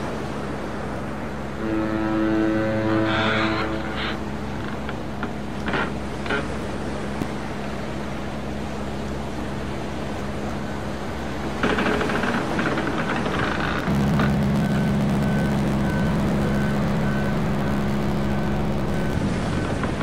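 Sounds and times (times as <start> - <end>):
wind and rain noise: 0.0 - 20.0.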